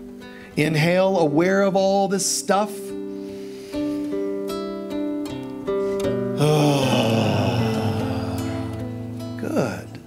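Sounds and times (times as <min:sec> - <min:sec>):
acoustic guitar picking chords: 0:00.0 - 0:10.0.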